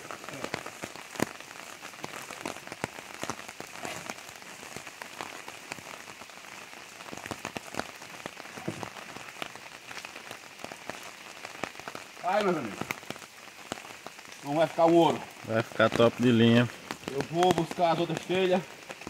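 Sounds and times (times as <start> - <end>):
steady rain falling: 0.0 - 19.0.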